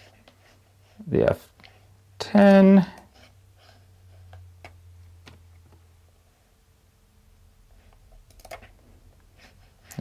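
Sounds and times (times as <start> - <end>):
faint low hum: 0.0 - 10.0
computer mouse clicks: 8.2 - 8.7.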